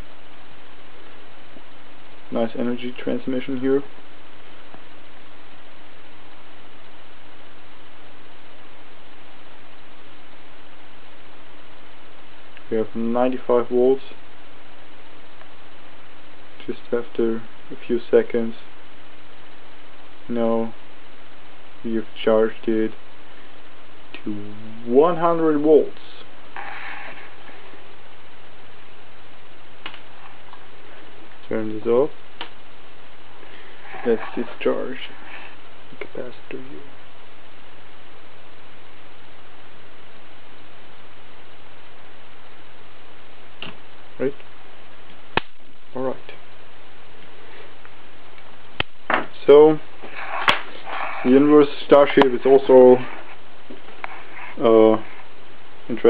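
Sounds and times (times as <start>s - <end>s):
faint steady hum: 0.0s - 56.0s
steady hiss: 0.0s - 56.0s.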